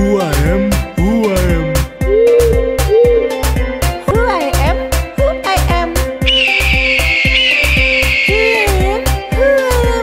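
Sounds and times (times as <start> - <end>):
eagle screech: 6.3 - 8.7.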